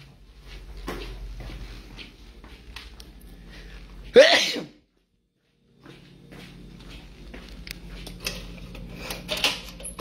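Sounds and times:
person sneezing: 4.1 - 4.8.

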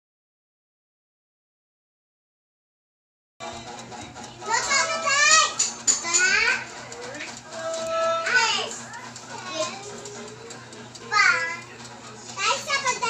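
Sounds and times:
high-pitched voices calling out: 4.3 - 13.0.

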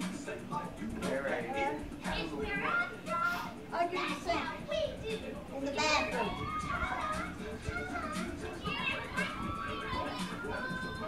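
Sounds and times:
music with a regular beat: 0.0 - 11.0
children's voices: 2.1 - 11.0.

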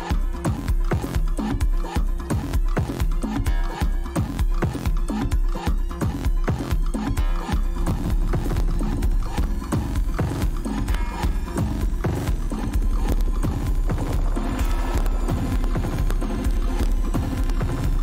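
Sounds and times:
dance music with heavy bass: 0.0 - 18.0.

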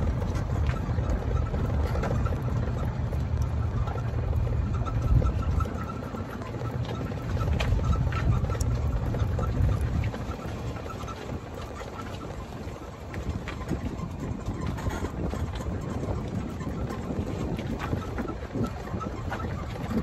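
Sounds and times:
golf cart running: 0.0 - 20.0.

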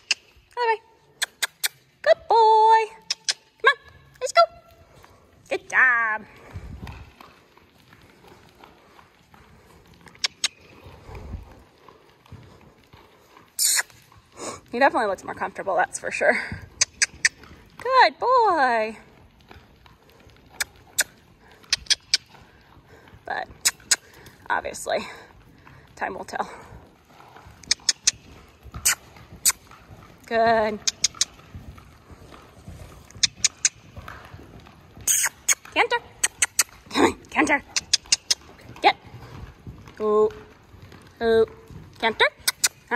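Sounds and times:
tongue clicks: 0.0 - 0.3, 1.2 - 1.8, 3.0 - 3.5, 10.2 - 10.6, 13.6 - 14.0, 20.6 - 22.2, 27.6 - 28.2, 28.8 - 29.6, 30.8 - 31.2, 35.1 - 35.6, 37.7 - 38.4, 42.4 - 42.8
muffled hoofbeats on sand: 4.6 - 42.9.

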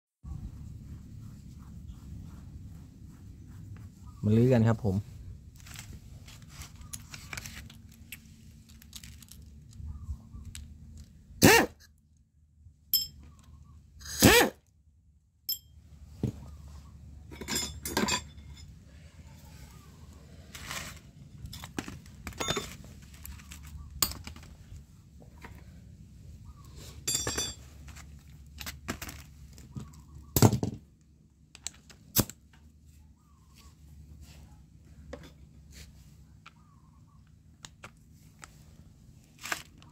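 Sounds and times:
light metallic clinks: 12.9 - 13.5.

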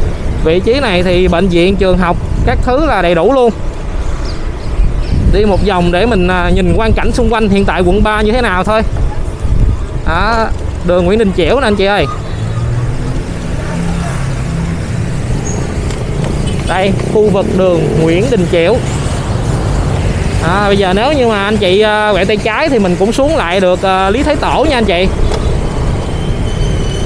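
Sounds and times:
motorbike and car engines: 0.0 - 27.0
road noise: 0.0 - 27.0
street traffic: 0.0 - 27.0
wind rumble: 0.0 - 27.0
motorbike engine: 23.5 - 27.0.

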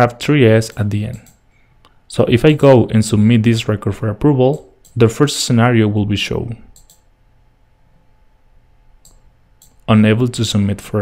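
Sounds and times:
faint steady hum: 0.0 - 11.0
computer mouse clicks: 0.7 - 1.4, 6.8 - 7.1, 9.0 - 9.9.

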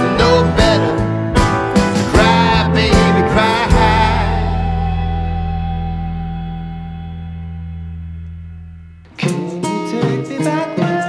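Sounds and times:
deep bass note: 1.4 - 9.2
band chord ringing out: 1.4 - 9.5.

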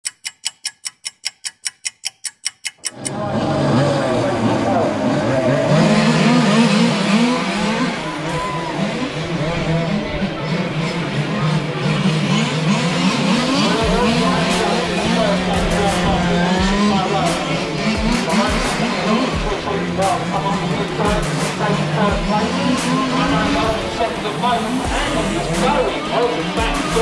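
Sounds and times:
rapid even ticking: 0.0 - 3.2, 13.7 - 27.0
radio-controlled car engines: 2.9 - 27.0.

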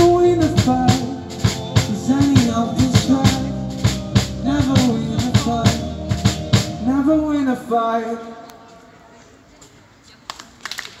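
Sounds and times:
scattered hand claps: 10.2 - 11.0.

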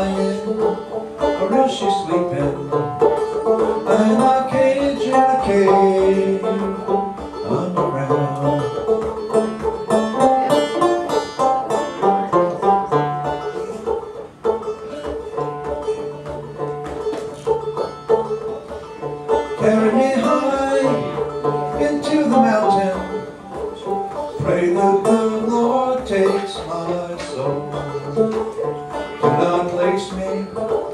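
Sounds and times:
banjo picking: 0.0 - 30.9.

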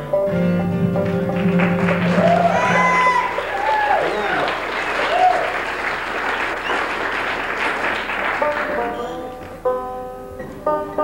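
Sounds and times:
audience applauding: 0.7 - 9.6
shouts and whoops: 2.0 - 5.6.

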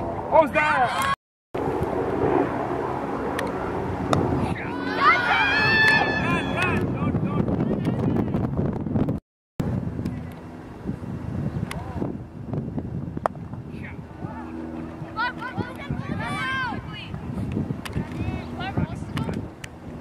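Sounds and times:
wind rumbling on microphone: 0.0 - 20.0.

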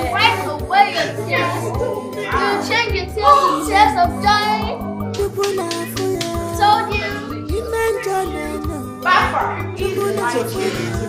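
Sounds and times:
children's excited voices: 0.0 - 4.9, 6.5 - 11.0
background music with steady beat: 0.0 - 11.0.

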